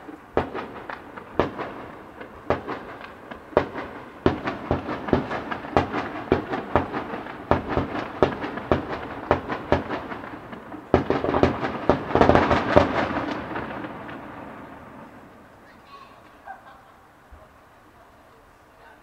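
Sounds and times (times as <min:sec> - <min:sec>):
firework shells bursting: 0:00.0 - 0:16.4.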